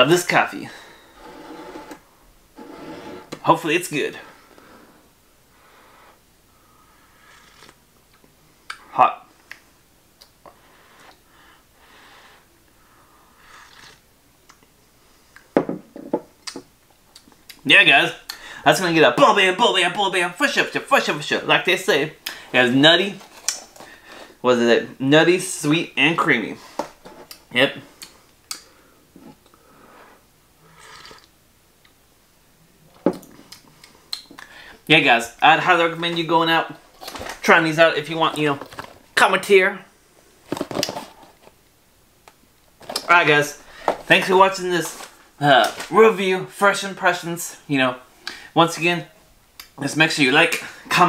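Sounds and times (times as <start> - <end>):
breaths: 0.6 - 1.3, 4.2 - 7.6, 10.5 - 13.7, 18.3 - 18.7, 22.2 - 22.6, 23.8 - 24.4, 28.6 - 31.2, 33.8 - 34.9, 43.6 - 44.1, 48.2 - 48.6
slurping sips of coffee: 1.1 - 2.0, 2.6 - 3.4, 7.2 - 7.8, 13.4 - 14.0, 30.0 - 31.3
coffee mug knocking on table: 15.6 - 16.3.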